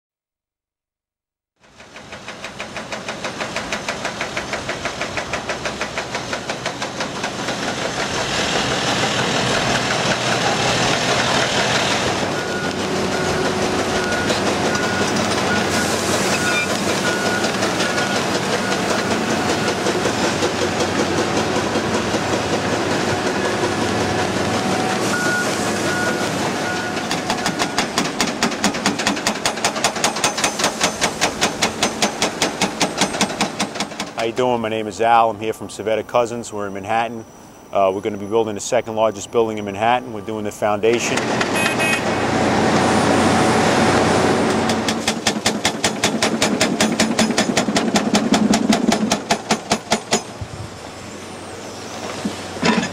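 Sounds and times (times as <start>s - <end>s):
hydraulic hammer breaking rock: 44.7s - 50.4s.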